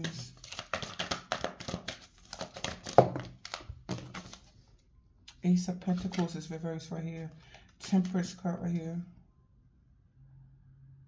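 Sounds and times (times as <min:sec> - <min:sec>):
cards clicking and flicking: 0:00.0 - 0:04.4.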